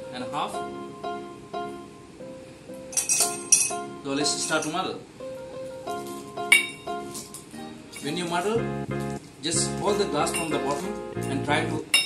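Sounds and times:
plucked strings music: 0:05.4 - 0:11.9.

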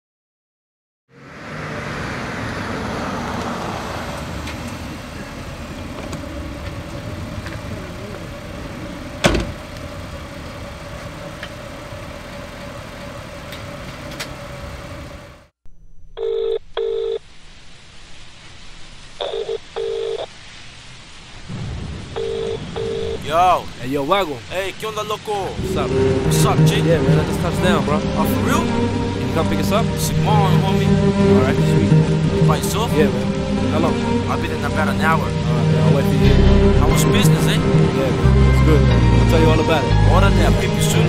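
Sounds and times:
street noise: 0:01.1 - 0:15.5, 0:21.2 - 0:41.0
low hum: 0:04.1 - 0:19.6
telephone ringback tone: 0:16.2 - 0:17.2, 0:19.2 - 0:20.3, 0:22.2 - 0:23.2.

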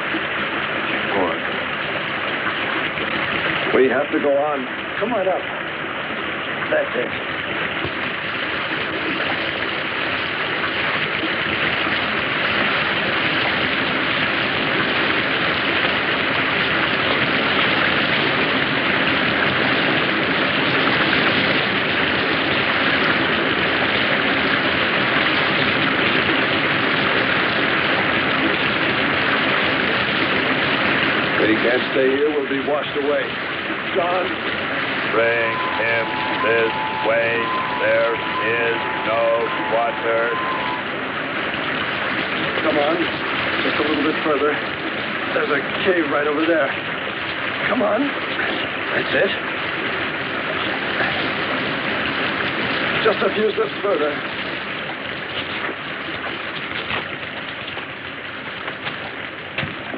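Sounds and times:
heavy rain: 0:00.0 - 0:59.9
running water: 0:00.0 - 0:59.9.

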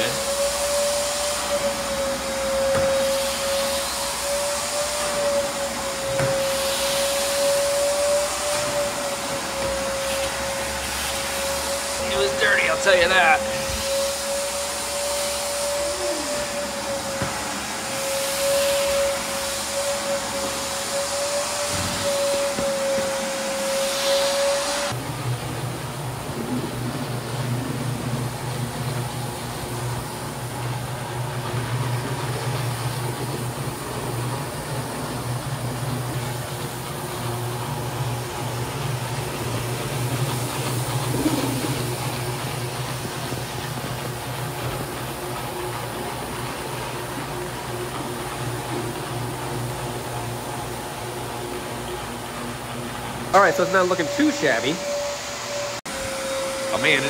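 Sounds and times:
floor machine motor humming: 0:00.0 - 0:57.0
wet dry vacuum motor whining: 0:00.0 - 0:57.0.

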